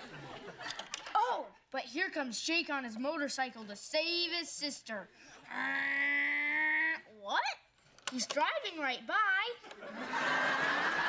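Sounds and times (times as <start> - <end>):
boy imitating motorcycle engine: 5.4 - 7.3.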